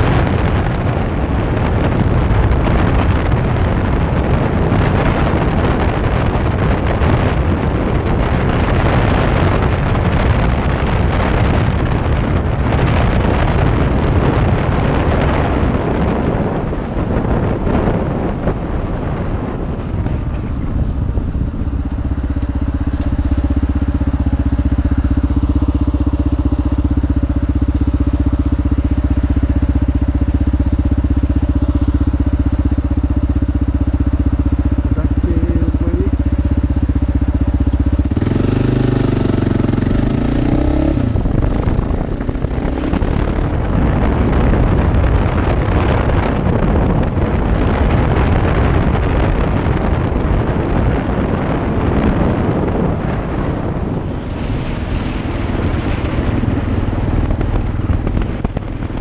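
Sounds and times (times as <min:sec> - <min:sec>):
motorcycle engine: 0:00.0 - 0:59.0
road noise: 0:00.0 - 0:59.0
wind over microphone: 0:00.0 - 0:59.0.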